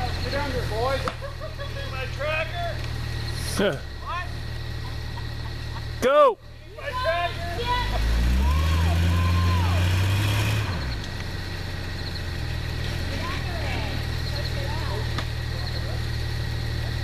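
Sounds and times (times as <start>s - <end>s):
tractor engine revving: 0.0s - 17.0s
people calling out: 5.9s - 10.0s.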